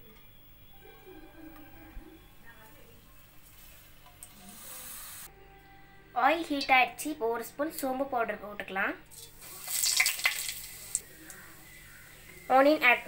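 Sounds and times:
faint background music: 0.0 - 13.0
soft hiss: 2.7 - 5.3.

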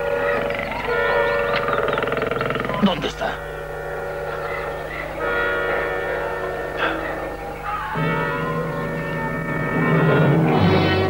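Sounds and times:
orchestral chords: 2.8 - 11.0.

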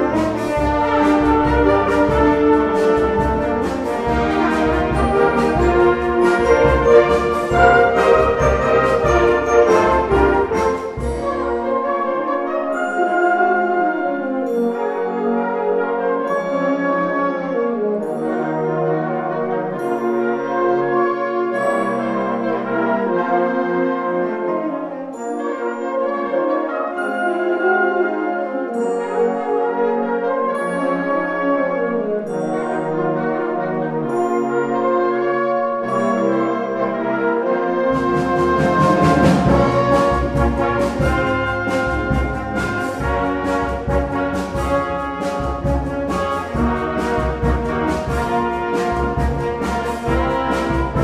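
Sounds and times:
bass and percussion beat: 0.0 - 11.6, 38.0 - 51.0
concert band playing: 0.0 - 13.3, 37.7 - 51.0.

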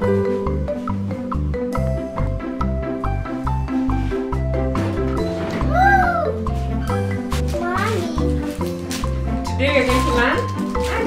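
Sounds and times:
children's music with steady beat: 0.0 - 11.0.

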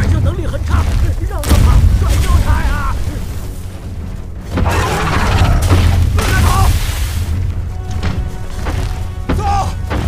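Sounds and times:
heavy low rumble: 0.0 - 9.2
dramatic orchestral score: 0.0 - 10.0.

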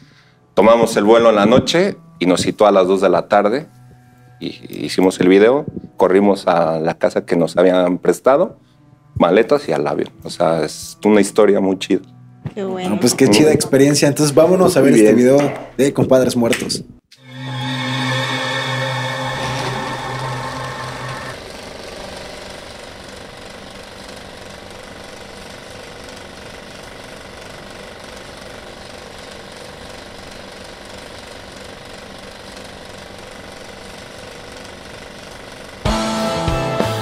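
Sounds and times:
loud sustained chord: 17.2 - 24.4
engine-like drone: 17.2 - 25.2.

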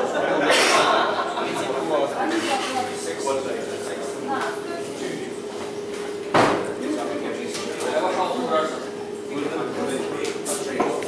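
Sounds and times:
murmur of people talking: 0.0 - 11.0
steady hum: 0.0 - 11.0
sharp hard knock: 6.3 - 6.6.

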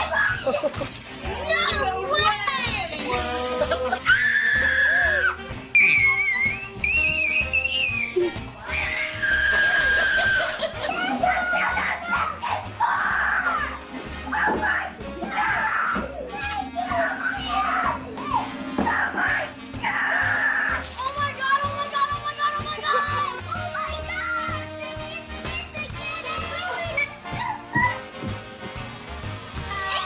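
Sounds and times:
children shrieking and shouting: 0.0 - 24.8, 25.7 - 28.1, 29.7 - 30.0
faint background music: 0.0 - 30.0
child shrieking: 3.9 - 13.7.

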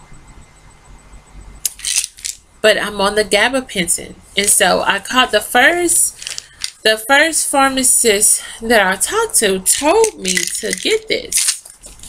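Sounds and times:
tablets rattling in plastic bottle: 1.7 - 2.4, 6.1 - 6.9, 9.7 - 12.0.

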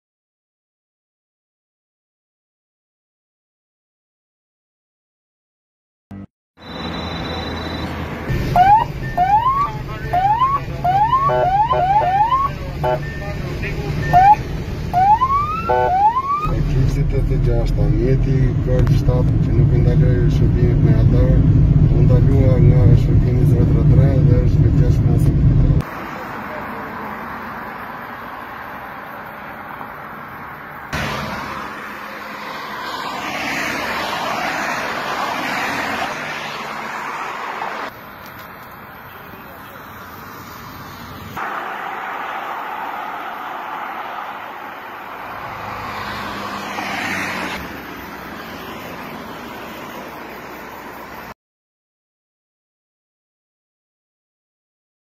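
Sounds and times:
low engine and road drone: 6.1 - 51.4
cars passing at speed: 6.6 - 22.5, 25.1 - 39.0, 39.7 - 51.4
police siren whooping: 8.3 - 16.5, 41.4 - 45.3.

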